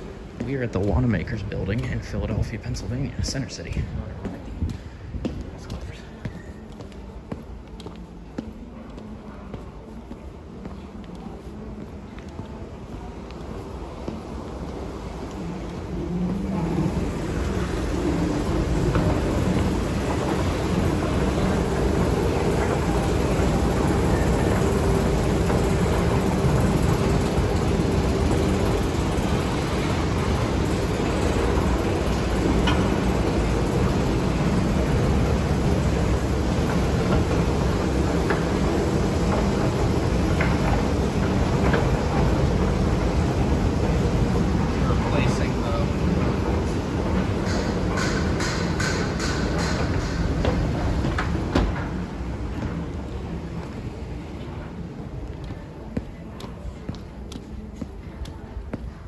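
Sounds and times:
escalator mechanical rumble: 0.0 - 59.0.

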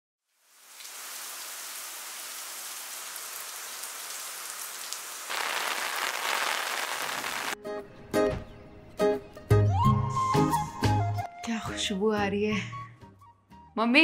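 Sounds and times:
heavy rain splashing on hard surface: 0.4 - 7.6
music: 7.6 - 14.0.

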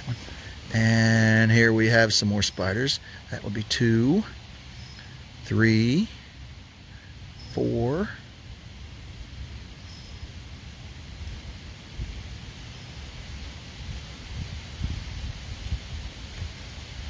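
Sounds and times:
wind rumble on microphone: 8.4 - 17.0.

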